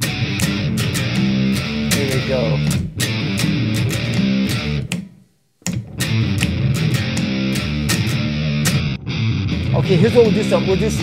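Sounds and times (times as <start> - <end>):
electric guitar bass-like riff: 0.0 - 5.0, 5.7 - 11.0
metronome beat: 0.0 - 8.9.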